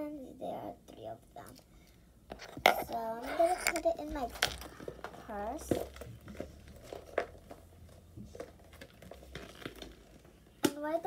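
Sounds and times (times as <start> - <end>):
purse rustling and clicking: 2.4 - 10.3.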